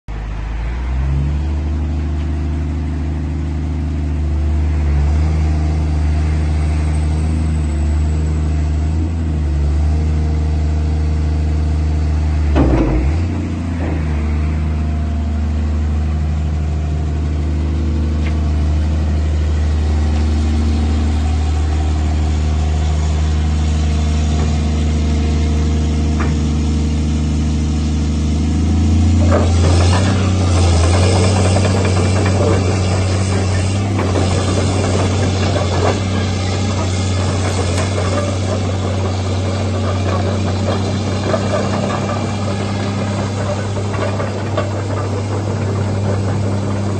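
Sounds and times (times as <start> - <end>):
excavator diesel engine running: 0.1 - 46.9.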